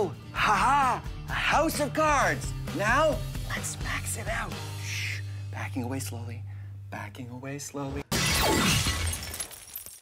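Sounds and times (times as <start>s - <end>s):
glass shattering: 8.1s - 10.0s
glass fragments tinkling: 8.2s - 10.0s.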